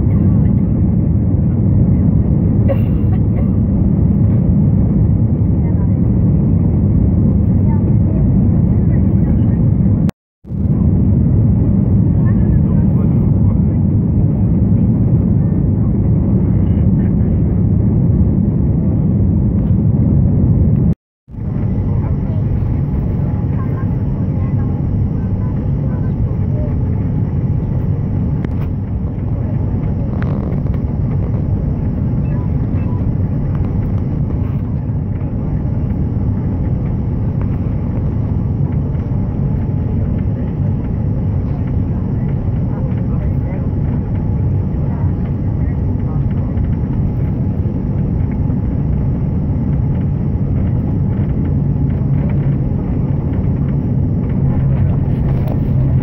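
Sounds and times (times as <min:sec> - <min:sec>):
airliner cabin engine and airflow: 0:00.0 - 0:56.0.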